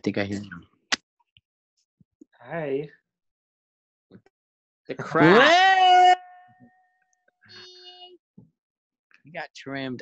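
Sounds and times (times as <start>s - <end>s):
man whooping: 5.2s - 6.3s.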